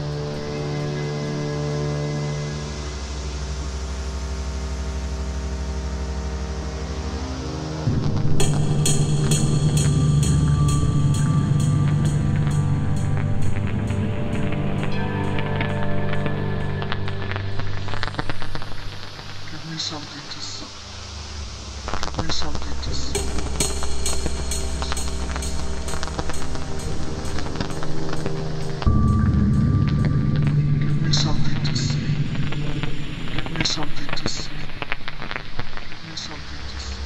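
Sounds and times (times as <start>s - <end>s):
held synth chords: 0.0s - 19.6s, 20.7s - 35.4s
low bass drone: 0.0s - 35.7s
steady ticking beat: 7.9s - 14.9s, 22.8s - 34.4s.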